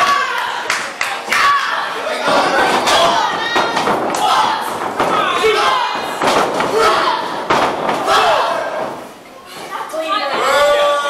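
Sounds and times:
people shouting in large hall: 0:00.0 - 0:09.1, 0:10.0 - 0:11.0
heavy thuds in wrestling ring: 0:02.3 - 0:09.2.

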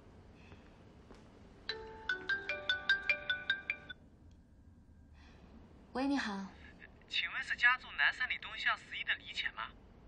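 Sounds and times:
mobile phone ringtone melody: 0:01.7 - 0:04.0.

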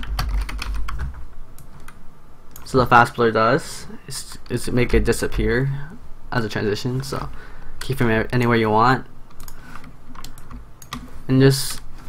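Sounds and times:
computer keyboard keys clicking: 0:00.0 - 0:02.7, 0:09.3 - 0:11.8.

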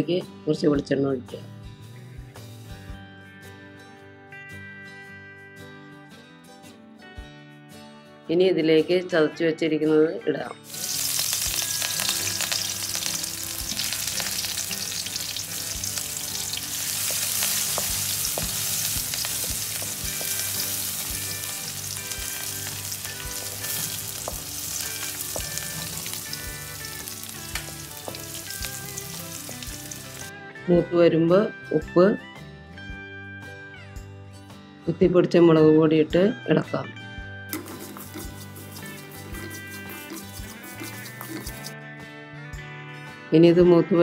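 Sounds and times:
onions sizzling in hot oil: 0:10.6 - 0:30.3
wooden spatula scraping a pan: 0:37.6 - 0:41.8.

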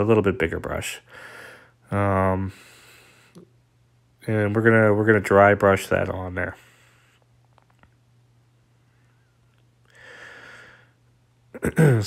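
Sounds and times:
steady low hum: 0:00.0 - 0:12.0
man clearing his throat: 0:11.6 - 0:12.0.

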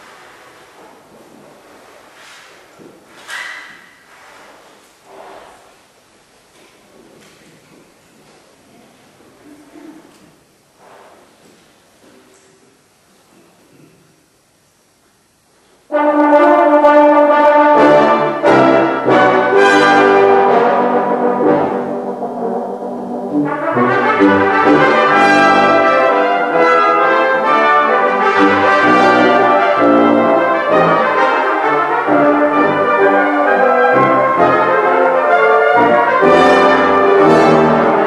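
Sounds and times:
faint shuffling: 0:00.0 - 0:14.1
brass ensemble sustained chord: 0:15.9 - 0:38.0
lower brass: 0:15.9 - 0:38.0.

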